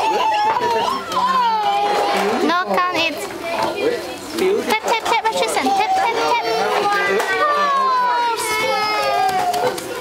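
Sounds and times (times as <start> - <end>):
children and adults chattering: 0.0 - 10.0.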